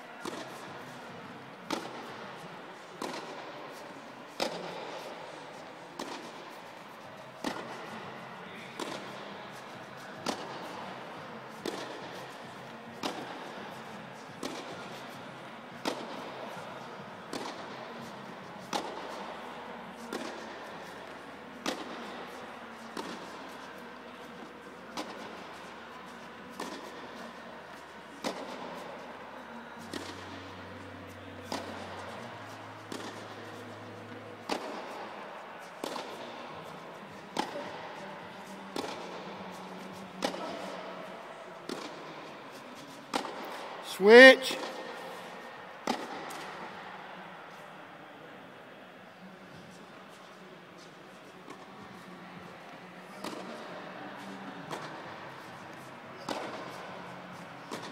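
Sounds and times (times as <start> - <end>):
tennis balls struck with rackets: 0.2 - 47.6, 49.6 - 57.9.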